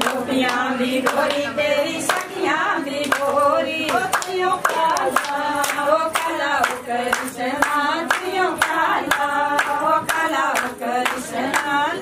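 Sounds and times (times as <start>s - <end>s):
hand clapping: 0.0s - 12.0s
women singing together: 0.0s - 12.0s.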